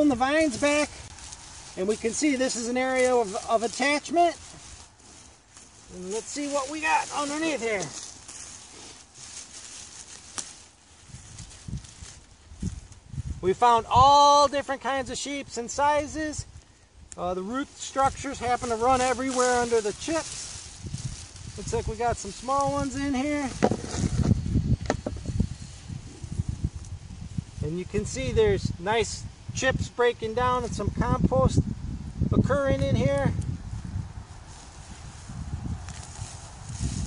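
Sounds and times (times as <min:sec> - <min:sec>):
scraping through mulch and soil: 0:00.0 - 0:29.1, 0:32.6 - 0:37.0
rustling vines: 0:00.0 - 0:37.0.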